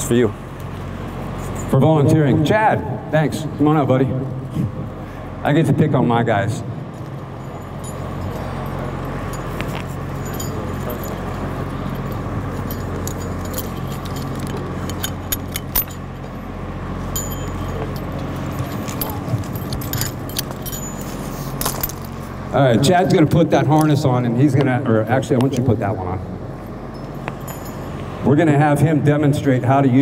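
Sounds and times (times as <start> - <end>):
steady low hum: 0.0 - 30.0
harness buckles clinking: 6.9 - 22.5, 26.7 - 28.3.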